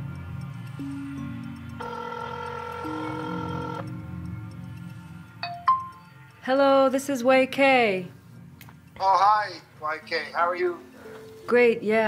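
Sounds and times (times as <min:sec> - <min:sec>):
low ambient music drone: 0:00.0 - 0:11.9
telephone ringing tone: 0:00.8 - 0:04.1.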